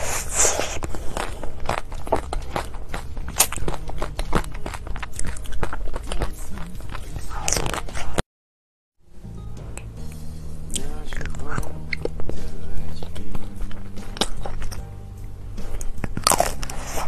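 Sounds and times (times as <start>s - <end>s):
biting chocolate: 0.0s - 8.2s, 10.8s - 14.9s, 15.6s - 17.0s
crunchy chewing: 0.0s - 8.2s, 10.7s - 14.9s, 15.6s - 17.0s.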